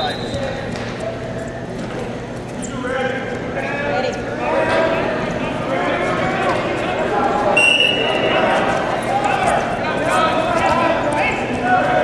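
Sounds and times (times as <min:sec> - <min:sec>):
voices calling out in a hall: 0:00.0 - 0:12.0.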